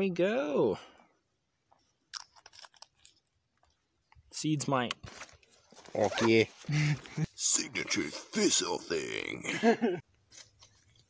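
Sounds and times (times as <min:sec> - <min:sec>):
glass vial clicks and scratches: 0:02.1 - 0:03.8.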